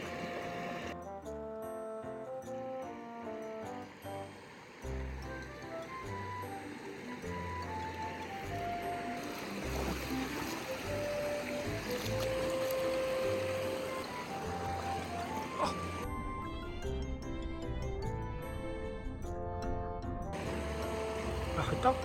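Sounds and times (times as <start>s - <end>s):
river water rushing: 3.6s - 16.0s, 20.4s - 22.0s.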